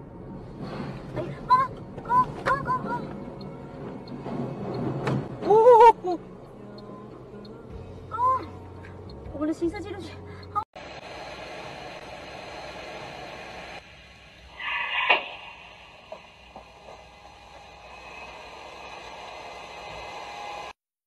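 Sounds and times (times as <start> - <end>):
car road and cabin noise: 0.0 - 20.7.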